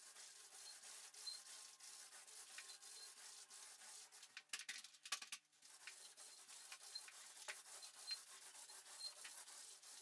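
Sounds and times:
paint roller rubbing on wallpaper: 0.0 - 4.3, 5.6 - 10.0.

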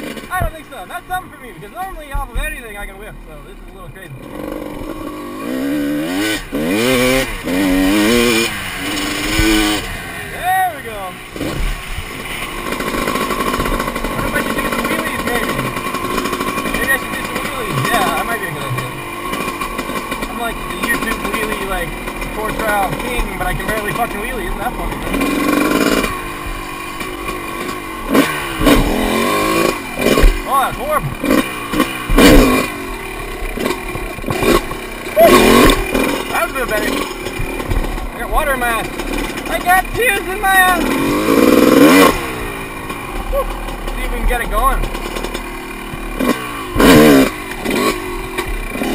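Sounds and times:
dirt bike engine running: 0.0 - 48.9.

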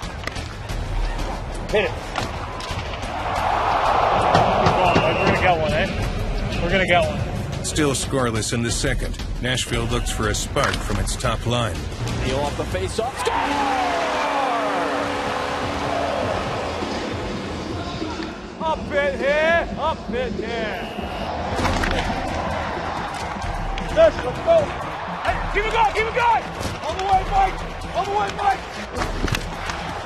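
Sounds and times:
arena crowd noise: 0.0 - 8.0, 13.1 - 30.0
background music: 0.0 - 30.0
hockey sticks and puck clacking: 10.6 - 11.0, 21.6 - 22.2, 28.0 - 30.0.

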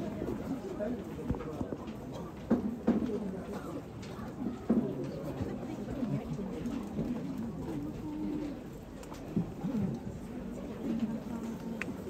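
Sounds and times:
low crowd chatter: 0.0 - 12.0.

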